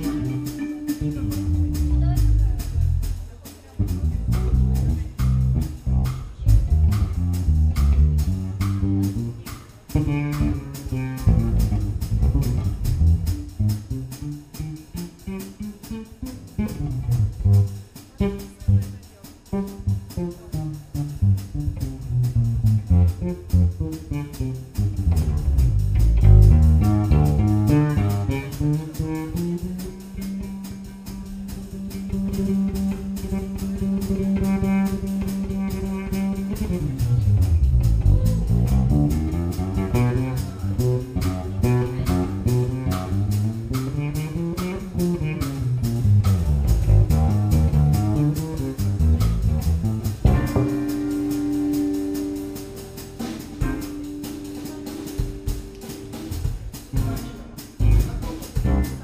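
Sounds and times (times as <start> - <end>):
drums playing: 0.0 - 59.0
jazz band improvising: 0.0 - 59.0
sliding bass notes: 0.0 - 59.0.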